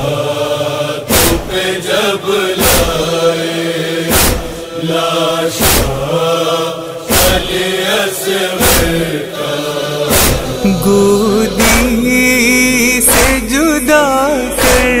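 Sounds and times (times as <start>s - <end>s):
chorus chanting wordlessly: 0.0s - 15.0s
deep rhythmic thump: 1.0s - 3.2s, 4.0s - 4.7s, 5.5s - 6.2s, 7.0s - 7.9s, 8.6s - 9.2s, 10.1s - 15.0s.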